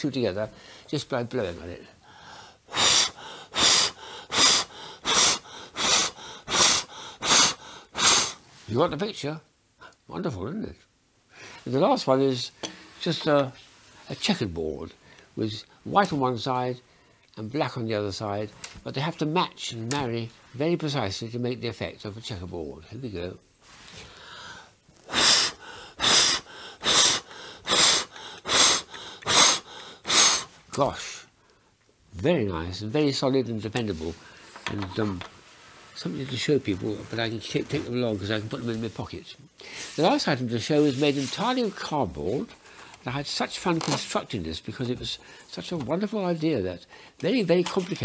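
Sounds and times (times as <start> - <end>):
soft breaths: 0.5 - 8.8, 11.3 - 11.9, 23.6 - 31.8, 33.8 - 41.9, 42.5 - 43.1
man blowing short puffs: 2.2 - 8.5, 23.7 - 30.7
breaths drawn in: 23.6 - 30.7.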